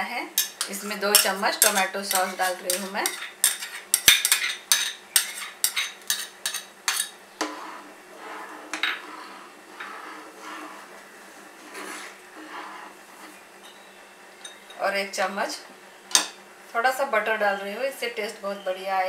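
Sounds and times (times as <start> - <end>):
metal spoon clinking against pots: 0.4 - 7.2, 14.4 - 14.8
spoon scraping saucepan: 0.4 - 13.8.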